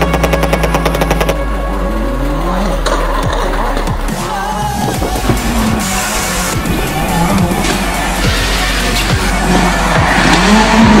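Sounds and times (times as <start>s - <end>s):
low musical drone: 0.0s - 11.0s
rally car engine popping and revving: 0.0s - 11.0s.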